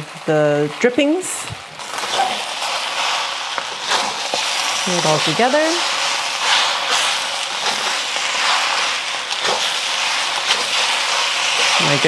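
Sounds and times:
food sizzling in a wok: 0:00.0 - 0:12.0
metal spatula scraping wok: 0:01.8 - 0:12.0.

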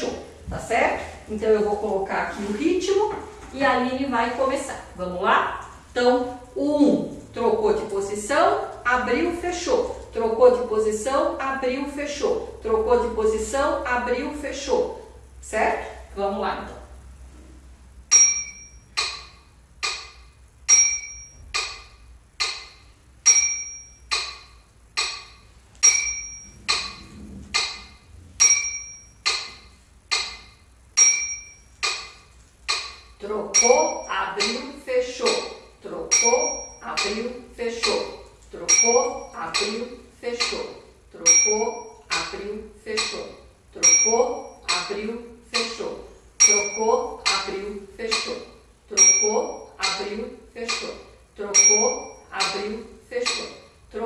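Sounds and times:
electronic metronome clicking: 0:18.1 - 0:45.8, 0:46.4 - 0:53.6.

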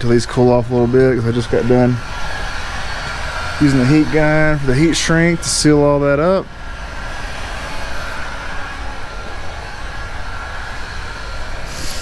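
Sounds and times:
outdoor background hiss: 0:00.0 - 0:12.0
wind buffeting microphone: 0:00.0 - 0:12.0.

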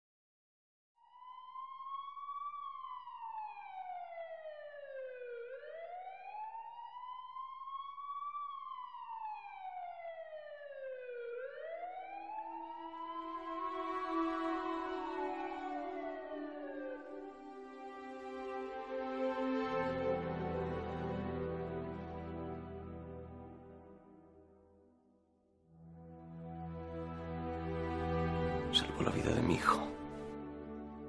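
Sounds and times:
ambulance siren wailing: 0:01.1 - 0:24.3, 0:26.2 - 0:31.0
music with long held notes: 0:12.7 - 0:24.4, 0:25.9 - 0:31.0.

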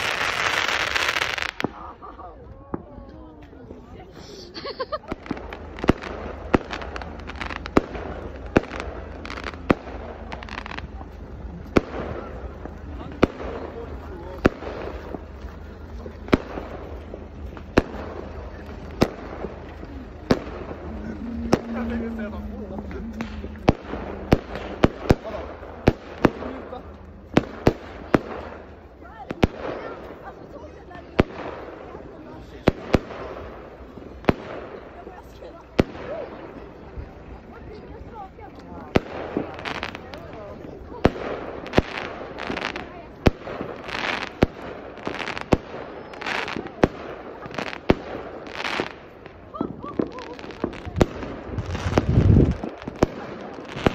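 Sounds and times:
fireworks bangs: 0:00.0 - 0:03.1, 0:04.9 - 0:37.4, 0:38.0 - 0:53.9.

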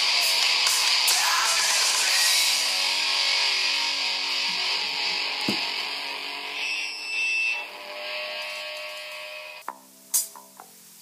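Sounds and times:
thin high tone: 0:06.3 - 0:09.6
steady high hiss: 0:07.9 - 0:11.0.

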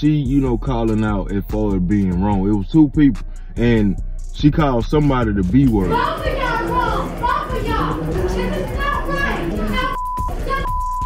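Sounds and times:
background music: 0:00.0 - 0:11.0
woman shouting angrily: 0:05.8 - 0:10.8
crowd chatter: 0:05.8 - 0:10.9.

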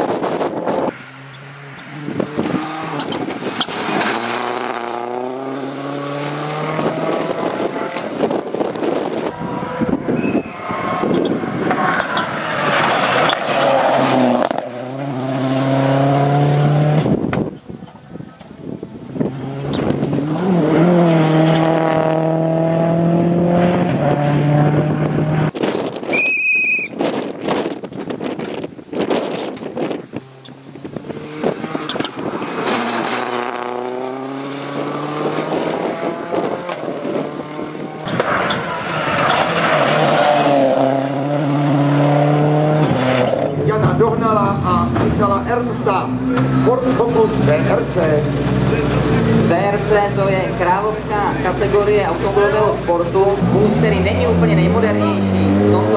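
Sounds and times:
rally car engine at full throttle: 0:00.0 - 0:26.2, 0:27.0 - 0:55.9
short high whistle: 0:10.2 - 0:10.6, 0:26.1 - 0:27.0.

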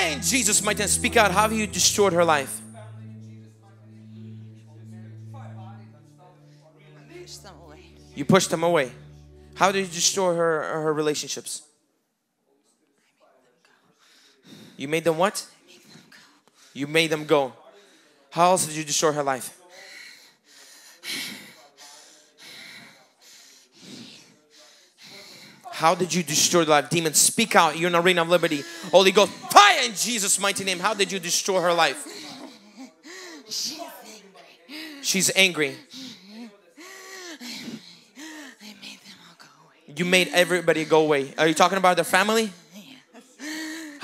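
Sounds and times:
woman breathing heavily: 0:19.7 - 0:25.7, 0:28.6 - 0:29.6, 0:31.7 - 0:35.1, 0:35.9 - 0:39.5, 0:43.4 - 0:44.0
woman half-whispering: 0:37.3 - 0:39.9.

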